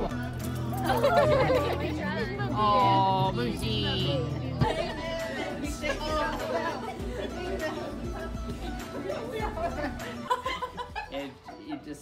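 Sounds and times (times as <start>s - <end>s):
background music: 0.0s - 12.0s
people chattering: 0.0s - 12.0s.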